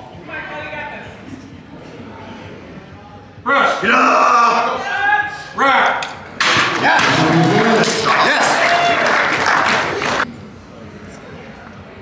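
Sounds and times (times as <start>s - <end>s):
spectators yelling encouragement: 6.8s - 9.5s
crowd cheering and applauding: 6.8s - 10.3s.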